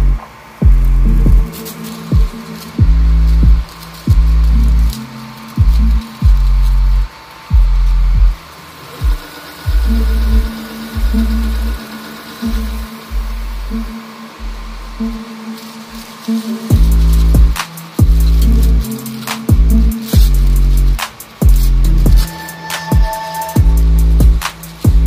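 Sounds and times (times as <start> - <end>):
music with heavy bass and drums: 0.0 - 25.0.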